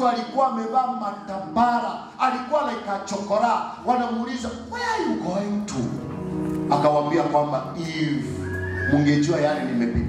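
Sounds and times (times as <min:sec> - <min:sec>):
man preaching through microphone: 0:00.0 - 0:06.1, 0:06.7 - 0:10.0
soft background music: 0:00.0 - 0:10.0.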